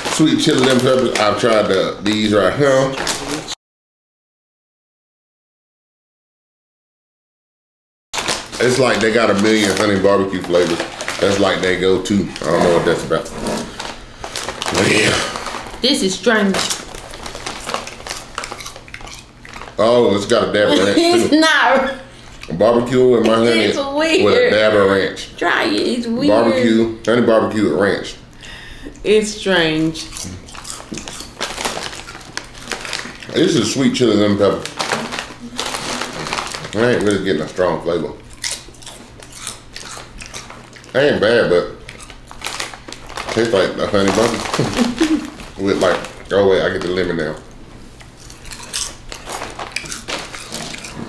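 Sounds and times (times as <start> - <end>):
chip bag rustling: 0.0 - 3.5, 8.2 - 21.3, 30.1 - 51.0
potato chips crunching: 0.0 - 3.5, 8.2 - 21.2, 30.0 - 47.4, 48.0 - 51.0.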